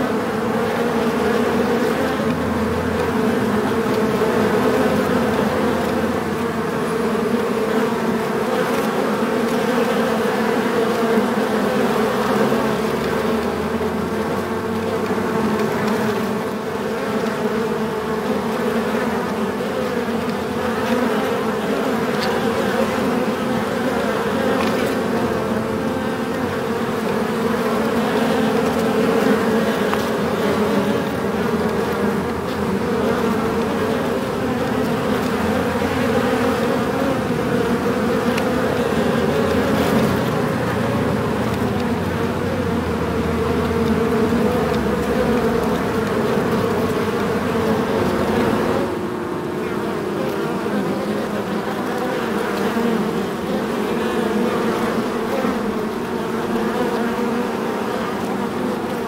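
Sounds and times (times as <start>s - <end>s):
bees buzzing in a hive: 0.0s - 59.0s.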